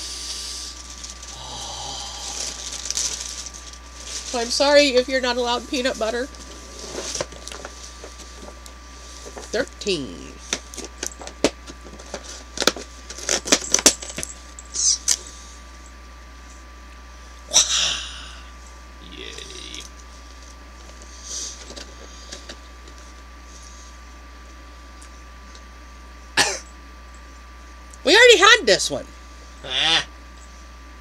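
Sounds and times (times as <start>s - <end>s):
cardboard rustling: 2.2s - 4.6s, 5.4s - 9.5s.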